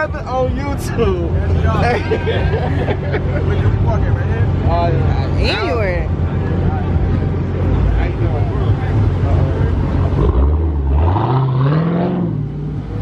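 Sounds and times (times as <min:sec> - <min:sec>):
car engine idling and revving: 0:00.0 - 0:13.0.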